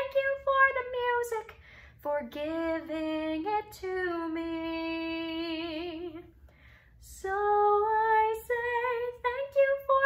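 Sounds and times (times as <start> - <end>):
woman singing unaccompanied: 0.0 - 6.3, 7.0 - 10.0
woman breathing in: 1.6 - 2.0, 6.4 - 7.0.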